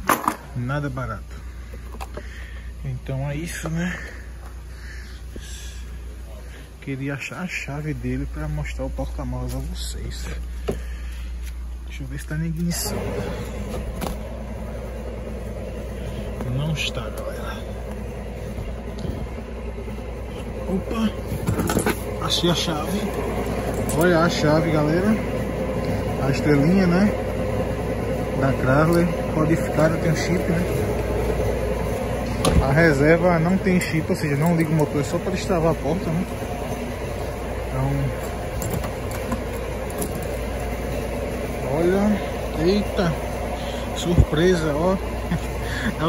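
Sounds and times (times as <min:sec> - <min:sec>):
low background rumble: 0:00.0 - 0:46.0.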